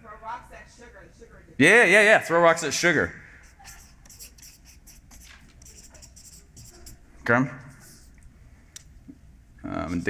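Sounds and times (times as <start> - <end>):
marker writing on paper: 3.4 - 7.0, 7.6 - 8.2.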